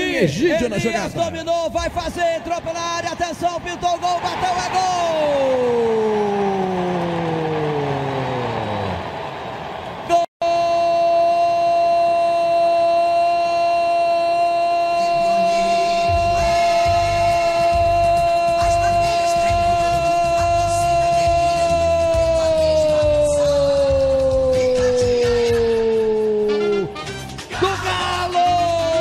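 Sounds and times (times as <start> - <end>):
held horn-like tone: 14.8 - 20.0
pitched tone sliding down: 15.0 - 18.2
music with bass beat: 15.2 - 22.4.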